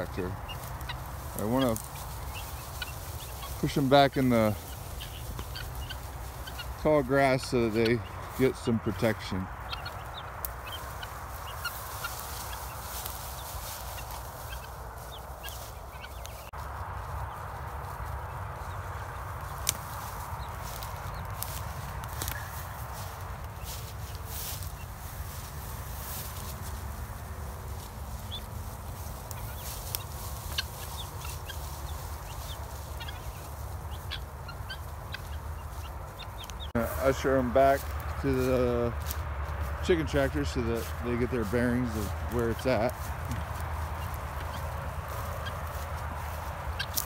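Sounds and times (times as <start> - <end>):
guinea fowl calling softly: 0.0 - 37.5, 40.5 - 47.0
dry stems crackling: 0.0 - 47.0
steady low rumble: 0.0 - 47.0.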